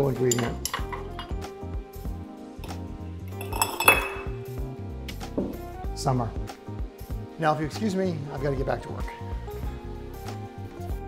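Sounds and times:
background music: 0:00.0 - 0:11.0
ice cube clinking into glass: 0:03.3 - 0:04.4.

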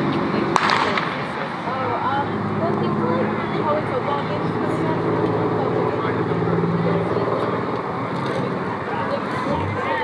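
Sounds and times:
steady low hum: 0:09.2 - 0:10.0
spectators shouting: 0:09.3 - 0:10.0.

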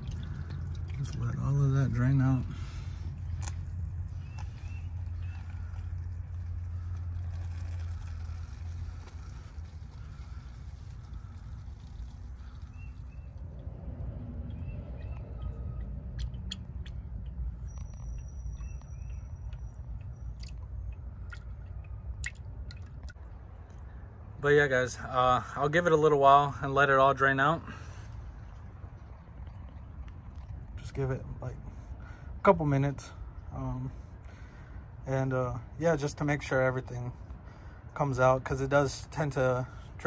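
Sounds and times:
oil pouring into a bucket: 0:00.0 - 0:18.9.

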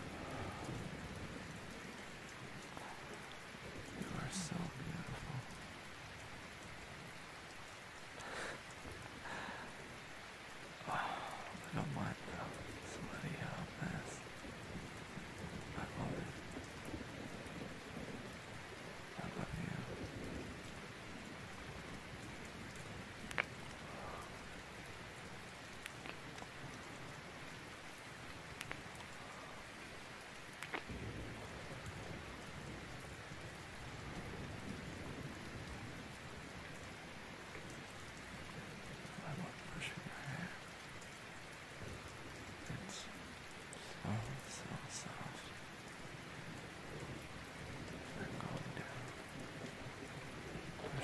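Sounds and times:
thunder rumbles: 0:00.0 - 0:07.5, 0:08.1 - 0:40.6, 0:41.7 - 0:51.0
steady rain: 0:00.0 - 0:51.0.

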